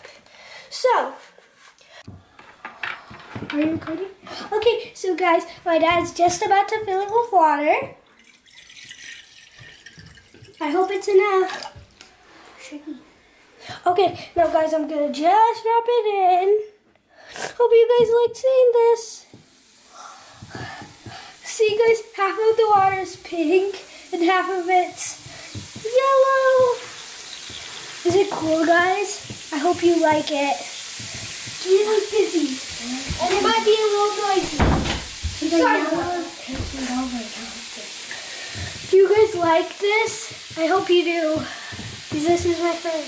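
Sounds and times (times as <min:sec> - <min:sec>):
water pouring into bowl: 0:08.0 - 0:11.8, 0:23.7 - 0:34.4
fizzing hiss in water: 0:19.2 - 0:43.0.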